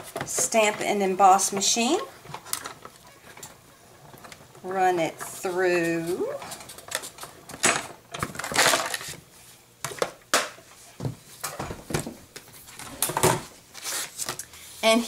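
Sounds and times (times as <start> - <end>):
plastic plates clacking and scraping: 0.0 - 9.2.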